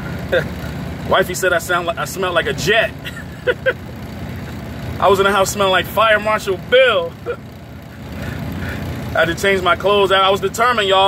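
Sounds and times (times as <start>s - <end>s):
truck engine rumbling: 0.0s - 11.0s
person laughing: 3.0s - 4.5s, 7.2s - 8.4s.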